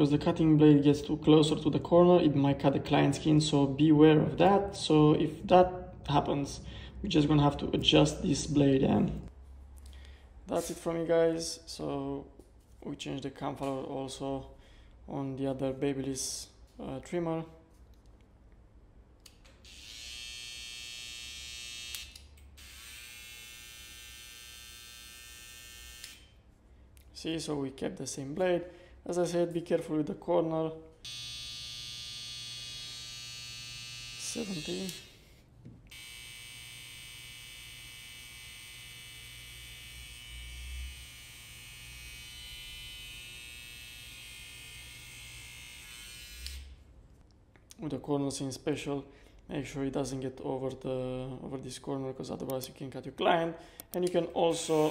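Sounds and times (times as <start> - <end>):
hair trimmer buzzing: 19.7 - 26.2, 31.0 - 35.2, 35.9 - 46.7, 54.5 - 54.9.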